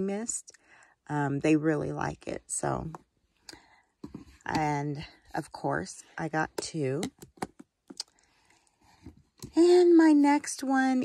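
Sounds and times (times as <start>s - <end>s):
plastic tubs clicking and tapping: 6.5s - 8.1s.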